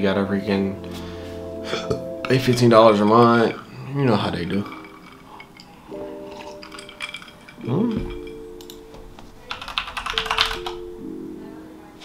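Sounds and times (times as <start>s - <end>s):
sustained chord music: 0.0s - 12.0s
computer keyboard typing: 8.6s - 10.9s.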